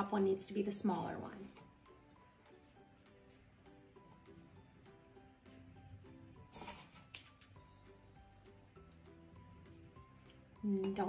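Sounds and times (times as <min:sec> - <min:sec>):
quiet background music: 0:00.0 - 0:11.0.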